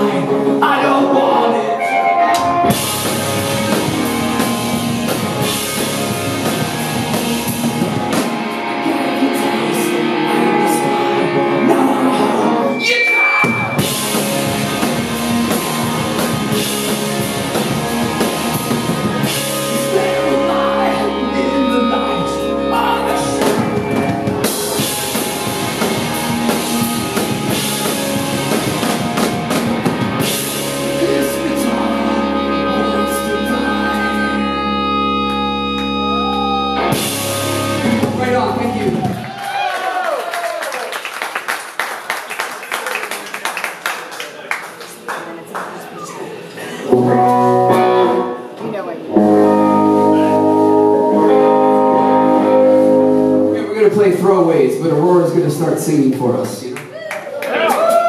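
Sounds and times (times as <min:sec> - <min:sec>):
electric guitars strummed: 0:00.0 - 0:39.4, 0:46.7 - 0:55.3
punk rock band playing: 0:00.0 - 0:39.6, 0:46.9 - 0:54.8
drums: 0:00.0 - 0:40.4, 0:46.8 - 0:56.2
rising whine: 0:10.3 - 0:39.0.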